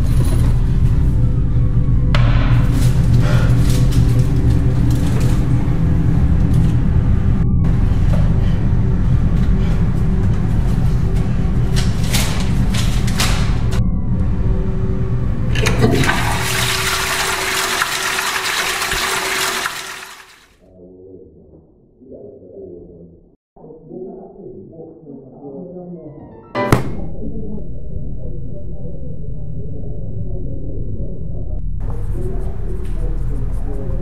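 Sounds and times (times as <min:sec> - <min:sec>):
low rumbling music: 0:00.0 - 0:16.7, 0:22.9 - 0:34.0
toilet flushing: 0:15.4 - 0:20.6.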